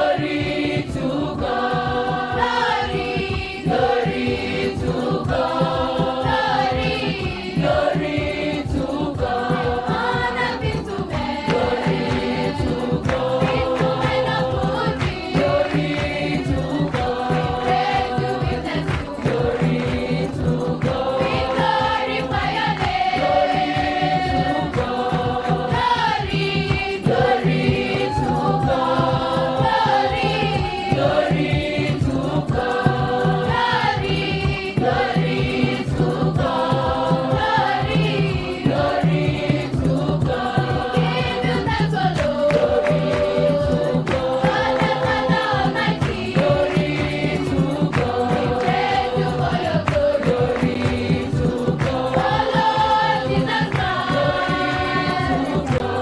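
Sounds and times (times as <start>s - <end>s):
drum beat: 0.0s - 56.0s
girls choir singing: 0.0s - 56.0s
hand-clapping: 0.0s - 56.0s.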